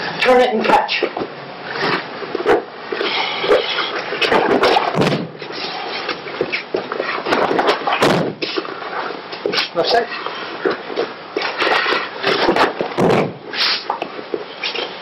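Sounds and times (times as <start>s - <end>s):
body thudding onto mat: 4.2s - 5.4s, 7.4s - 8.5s, 12.4s - 13.5s
sharp knocks: 4.2s - 5.4s, 7.3s - 8.5s, 12.4s - 13.4s.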